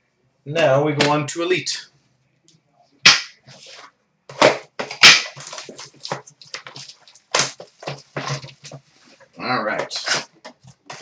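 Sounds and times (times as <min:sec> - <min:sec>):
plastic and cardboard crinkling: 0:03.4 - 0:11.0
plastic wrap snapping: 0:04.8 - 0:08.8.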